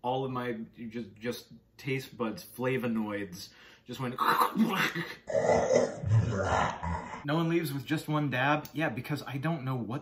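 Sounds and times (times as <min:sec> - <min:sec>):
man growling: 0:05.3 - 0:07.3.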